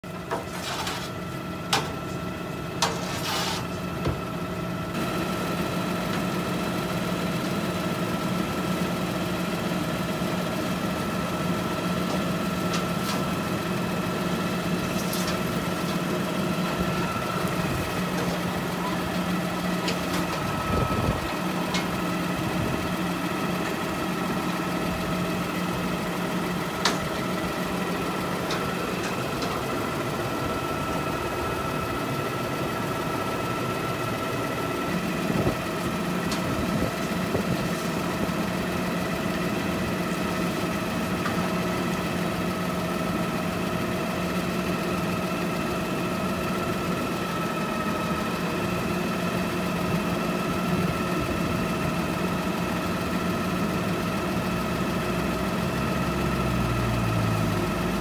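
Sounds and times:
garbage truck engine idling: 0:00.0 - 0:58.0.

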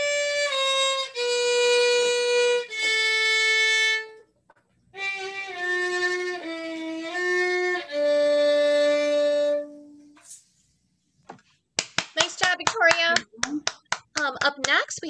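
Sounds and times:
solo violin melody: 0:00.0 - 0:04.2, 0:05.0 - 0:10.2.

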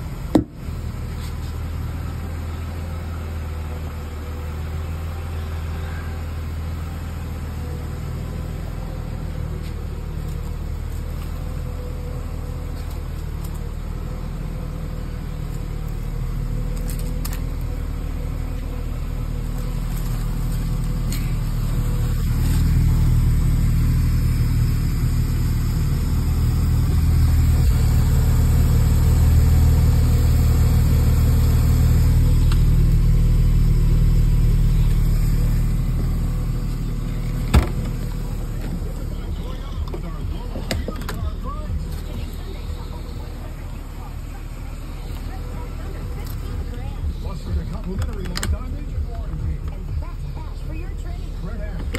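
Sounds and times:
car engine idling: 0:00.0 - 0:51.9.

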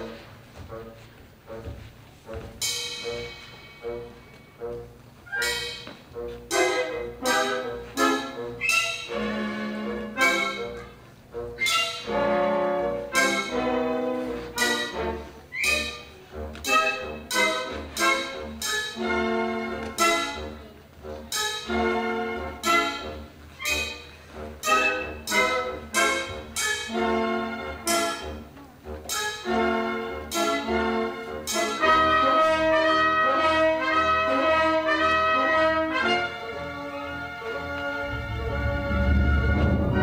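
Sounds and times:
orchestra playing accented chords: 0:00.0 - 0:15.5, 0:29.4 - 0:40.0.

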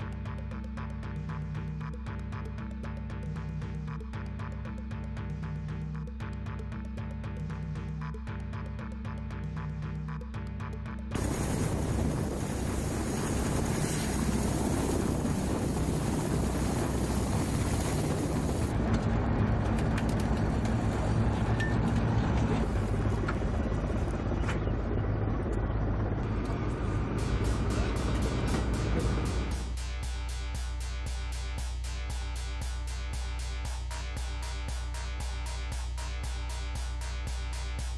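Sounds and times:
helicopter turbine and rotor noise: 0:10.0 - 0:29.8.

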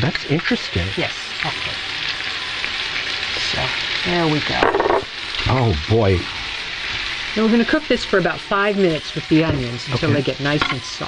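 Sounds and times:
meat and onion sizzling in oil: 0:00.0 - 0:11.0.

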